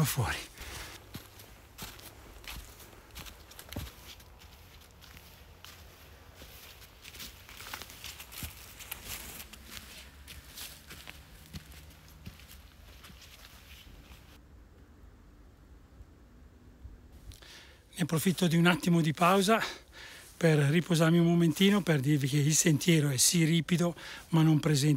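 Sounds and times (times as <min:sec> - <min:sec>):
footsteps in dry leaves: 0:00.2 - 0:14.4.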